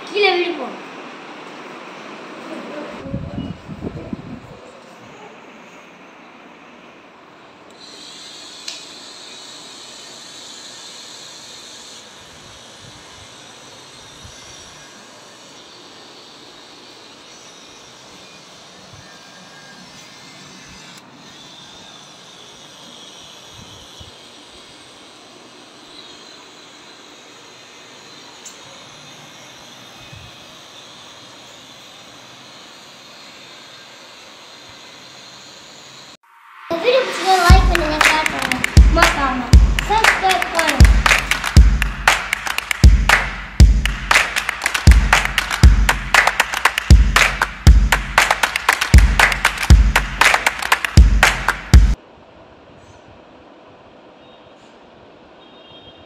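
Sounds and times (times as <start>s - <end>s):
toy motor whirring: 7.7s - 36.2s, 36.9s - 51.8s.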